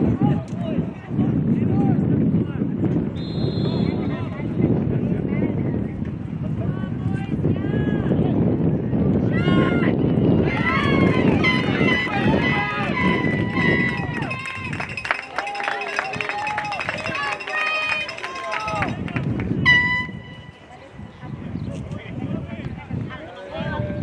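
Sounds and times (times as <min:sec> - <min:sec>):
wind rumble on microphone: 0:00.0 - 0:15.3, 0:16.0 - 0:24.0
people shouting: 0:09.3 - 0:14.8.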